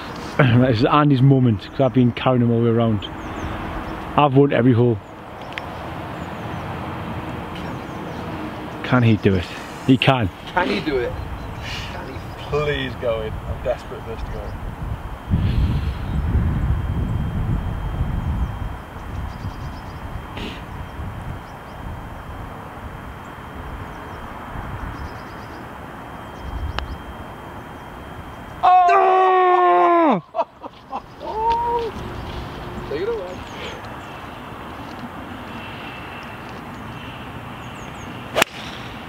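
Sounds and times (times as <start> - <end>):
wind buffeting microphone: 10.5 - 25.2.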